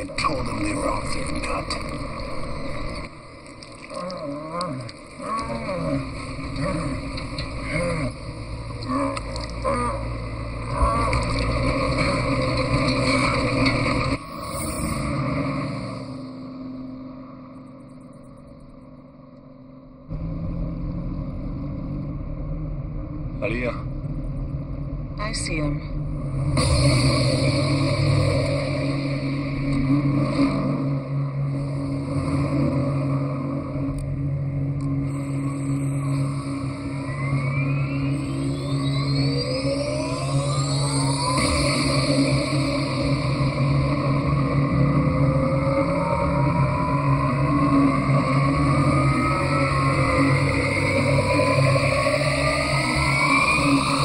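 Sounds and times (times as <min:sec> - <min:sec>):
vehicle engine noise: 0:00.0 - 0:17.6, 0:20.1 - 0:54.0.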